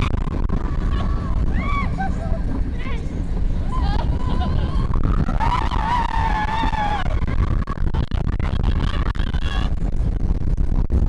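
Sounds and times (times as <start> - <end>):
roller coaster train rumbling: 0.0 - 11.0.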